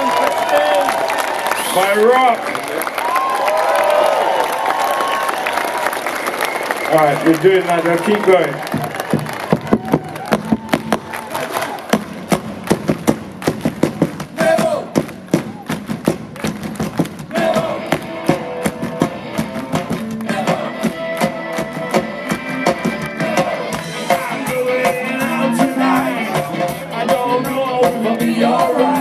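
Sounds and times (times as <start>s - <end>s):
crowd clapping along: 0.0s - 29.0s
live ska band playing: 12.1s - 29.0s.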